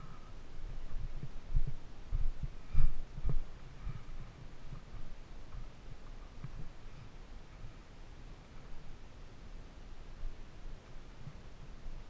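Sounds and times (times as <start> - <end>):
dull low thumps and rumble: 0.0 - 7.8.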